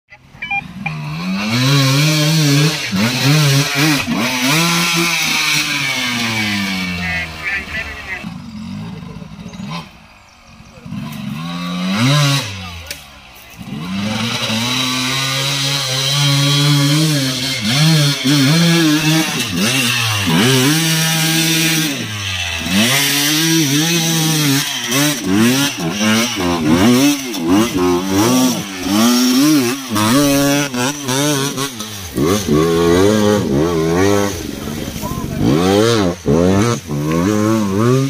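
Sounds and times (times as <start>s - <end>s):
dirt bike engine revving: 0.1s - 38.0s.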